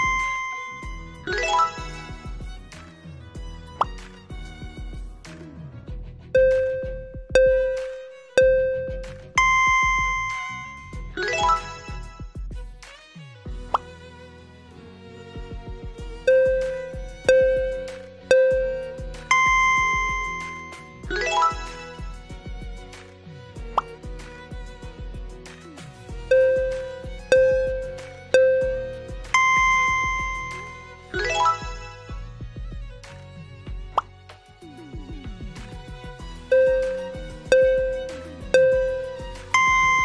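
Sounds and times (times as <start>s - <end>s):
soft background music: 0.0s - 40.0s.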